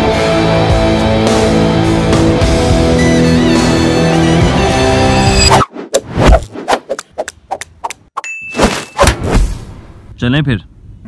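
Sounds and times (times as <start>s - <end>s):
high-pitched ding: 8.2s - 9.1s.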